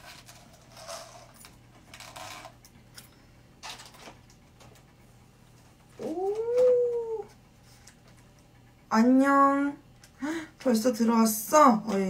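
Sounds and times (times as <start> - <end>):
drawn-out vocal call: 6.0 - 7.3.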